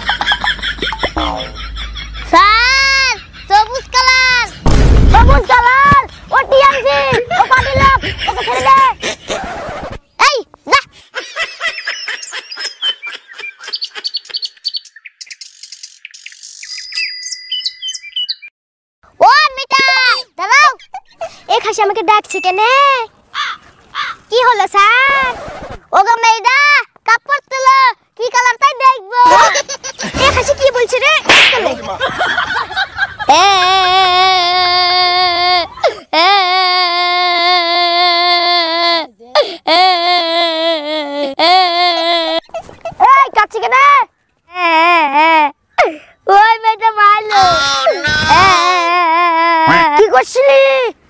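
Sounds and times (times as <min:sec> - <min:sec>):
birds chirping: 0:11.6 - 0:18.5, 0:22.2 - 0:24.3
long whistled bird notes: 0:14.3 - 0:18.5
child crying in wails: 0:33.3 - 0:42.4, 0:47.4 - 0:50.0.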